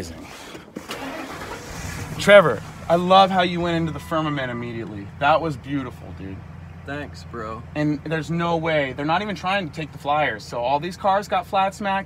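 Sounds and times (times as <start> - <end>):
car engine running: 0.8 - 12.0.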